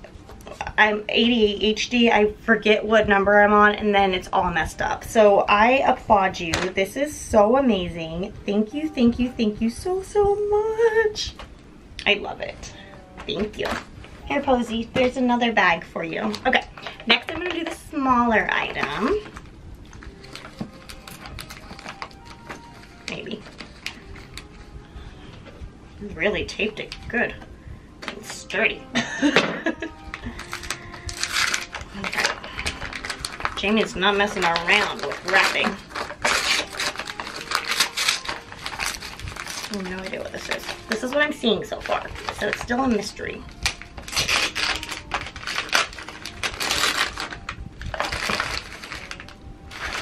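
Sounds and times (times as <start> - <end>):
paper and tape crinkling: 16.1 - 24.7, 29.7 - 50.0.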